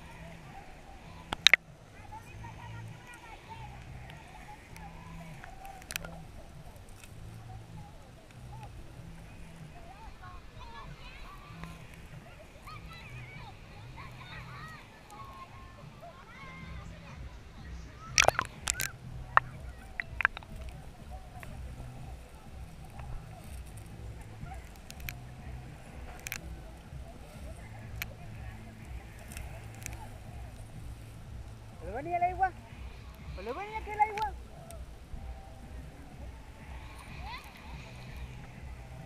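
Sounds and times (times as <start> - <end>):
faint wavering muffled tones: 0.0 - 39.0
low steady hum: 0.0 - 39.0
muffled underwater water sound: 0.0 - 39.0
sharp clicks: 1.3 - 1.6, 18.1 - 21.6.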